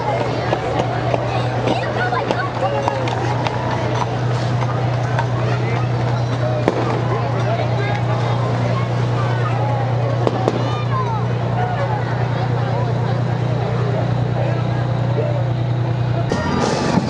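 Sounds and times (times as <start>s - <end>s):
crowd voices: 0.0s - 17.0s
diesel engine droning: 0.0s - 17.0s.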